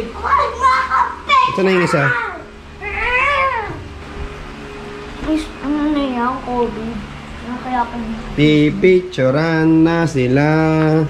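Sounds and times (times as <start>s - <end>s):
puppy whining: 2.1s - 3.9s.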